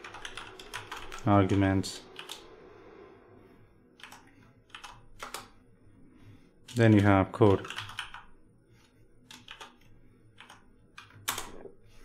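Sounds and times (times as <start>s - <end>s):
faint keyboard keystrokes: 9.2s - 11.7s.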